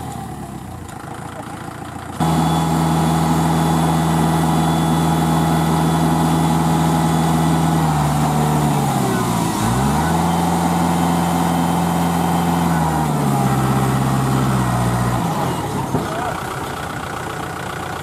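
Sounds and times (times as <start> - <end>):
tractor diesel engine running: 0.0 - 18.0.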